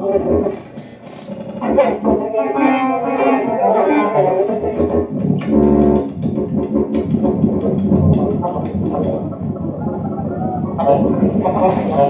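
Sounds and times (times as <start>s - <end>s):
low buzzing synthesizer texture: 0.0s - 12.0s.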